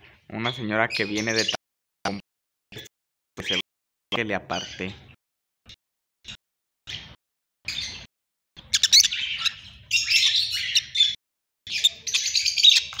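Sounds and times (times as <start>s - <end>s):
lovebirds chirping: 0.3s - 2.2s, 4.2s - 5.2s, 6.3s - 13.0s.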